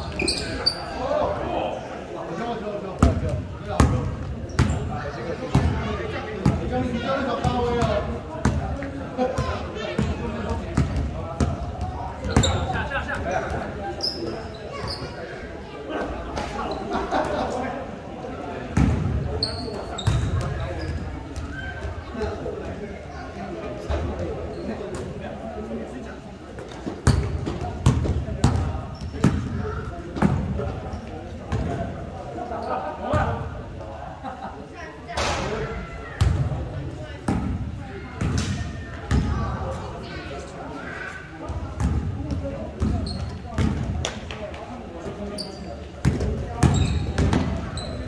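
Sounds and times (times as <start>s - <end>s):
sneakers squeaking on floor: 0.0s - 1.1s, 3.8s - 5.8s, 12.2s - 15.3s, 18.8s - 22.0s, 23.9s - 25.0s, 26.9s - 29.6s, 41.8s - 43.9s, 45.3s - 48.0s
basketball bouncing on court floor: 9.4s - 11.6s, 27.0s - 29.5s, 41.8s - 43.9s, 46.0s - 47.5s.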